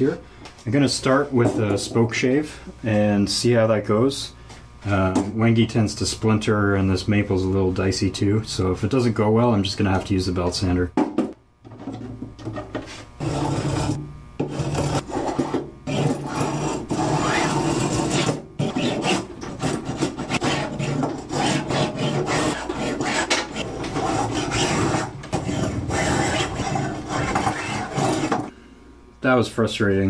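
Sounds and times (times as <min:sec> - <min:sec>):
spokeshave rasping on wood: 0:12.9 - 0:28.5.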